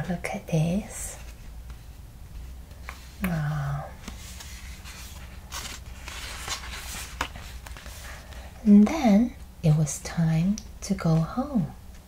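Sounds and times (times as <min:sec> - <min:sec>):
low room hum: 0:00.0 - 0:12.0
faint rustle of book pages: 0:00.7 - 0:10.0.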